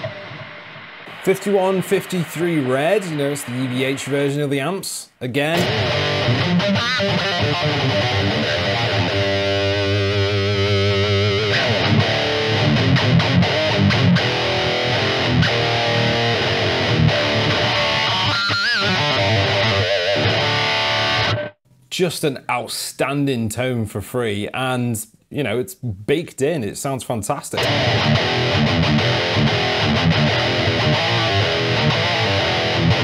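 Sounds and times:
distorted electric guitar riffs: 0:00.0 - 0:21.6, 0:27.6 - 0:33.0.

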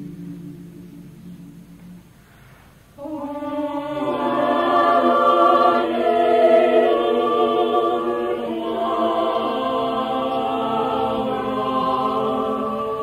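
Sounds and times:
choir singing sustained chords: 0:00.0 - 0:13.0.

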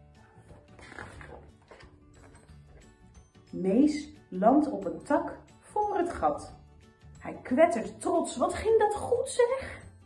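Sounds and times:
quiet background music: 0:00.0 - 0:10.0
paper page turning: 0:00.5 - 0:02.5.

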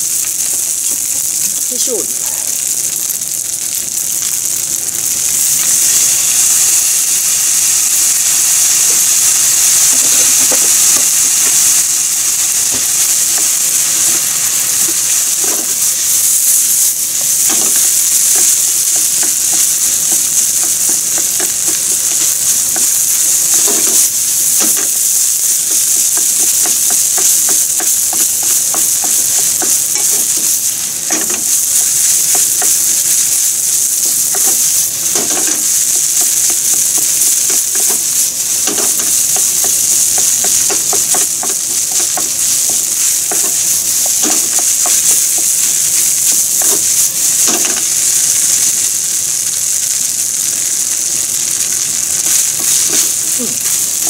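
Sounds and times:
rice sizzling in a frying pan: 0:00.0 - 0:54.0.

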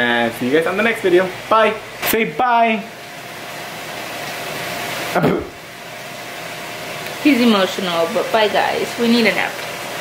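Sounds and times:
food cooking hiss: 0:00.0 - 0:10.0.

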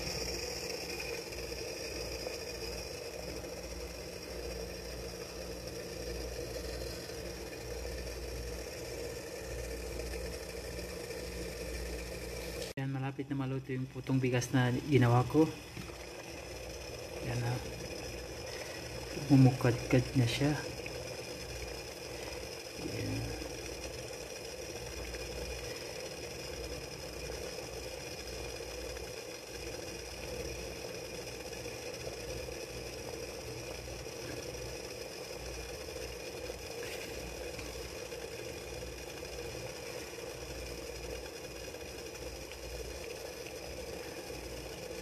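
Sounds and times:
water boiling with low bubbling: 0:00.0 - 0:45.0.

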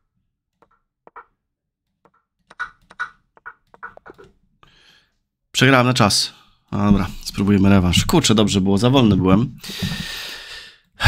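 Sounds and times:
chess move clicks: 0:02.0 - 0:04.4.

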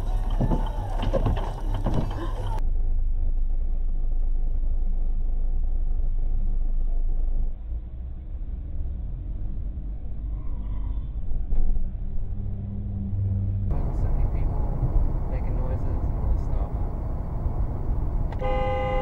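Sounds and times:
engine and tyre rumble: 0:00.0 - 0:19.0
car horn blast: 0:18.3 - 0:19.0.

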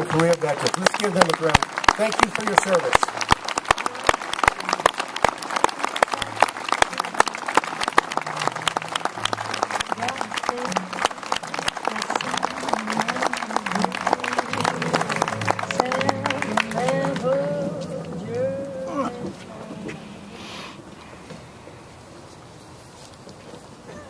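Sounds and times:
audience applauding: 0:00.0 - 0:19.4.

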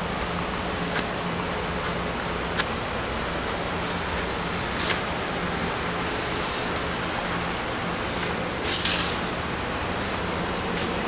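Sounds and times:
treadmill humming: 0:00.0 - 0:11.0.

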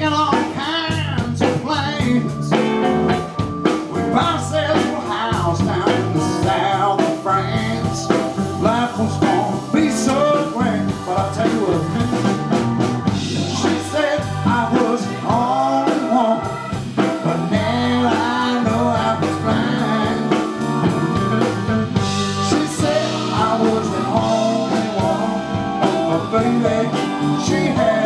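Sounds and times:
blues band playing: 0:00.0 - 0:28.0
man singing: 0:00.0 - 0:28.0.

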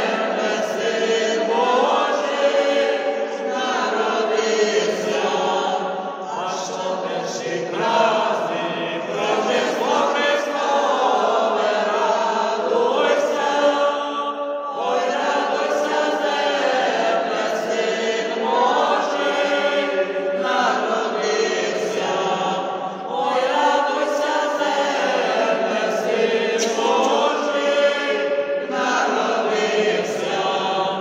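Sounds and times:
choir singing a carol unaccompanied: 0:00.0 - 0:31.0.

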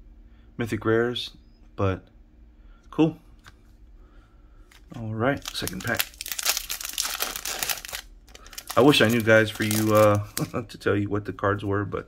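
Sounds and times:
foil wrapper crinkling: 0:04.8 - 0:10.6.

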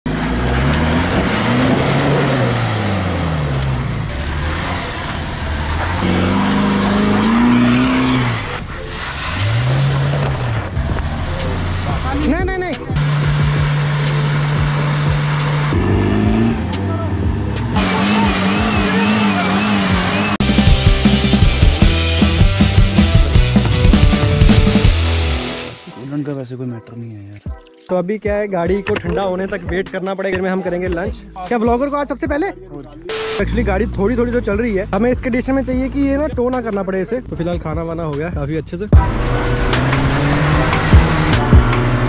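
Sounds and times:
off-road engines revving: 0:00.1 - 0:25.6, 0:33.1 - 0:37.3, 0:38.9 - 0:42.0.

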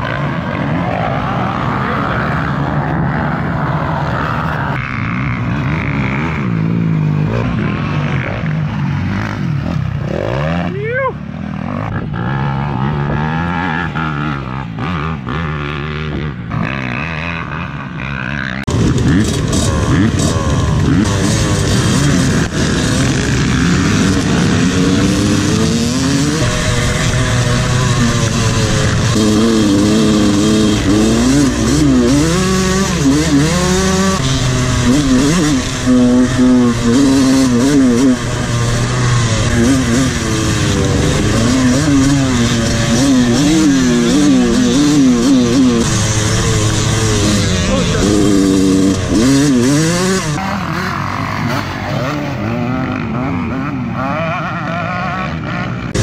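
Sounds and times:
dirt bike engine revving: 0:00.0 - 0:56.0
distant dirt bikes: 0:00.0 - 0:56.0
other dirt bikes: 0:00.0 - 0:56.0.

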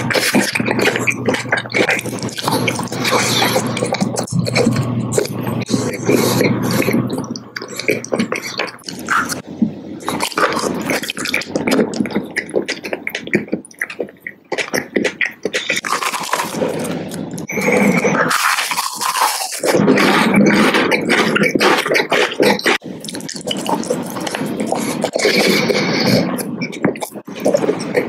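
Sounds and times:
chewing and crunching candy: 0:00.0 - 0:28.0.

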